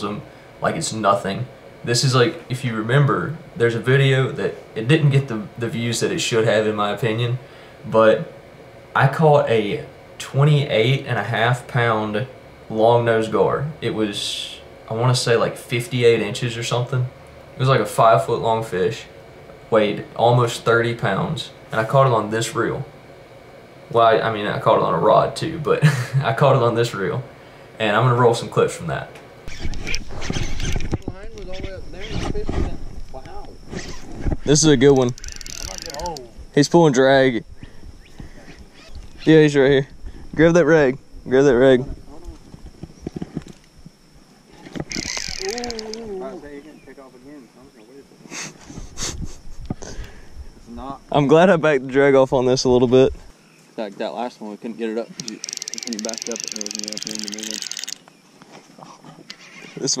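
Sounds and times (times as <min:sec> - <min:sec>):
fishing reel drag clicking: 0:29.5 - 0:32.2, 0:34.9 - 0:36.3, 0:44.7 - 0:46.2, 0:55.1 - 0:58.2, 0:59.3 - 0:59.9.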